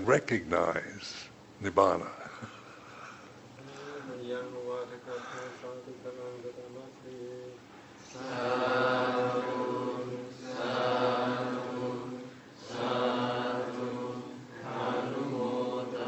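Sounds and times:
low voices chanting: 0:08.0 - 0:16.0.

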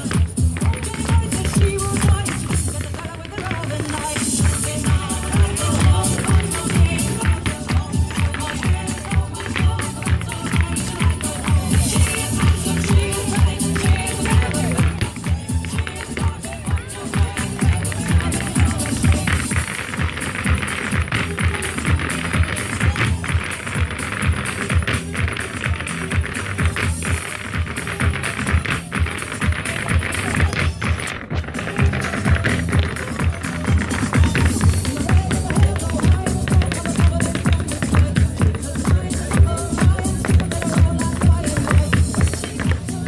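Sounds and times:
dance music over loudspeakers: 0:00.0 - 0:43.0
dance shoes on wooden floor: 0:00.0 - 0:43.0.

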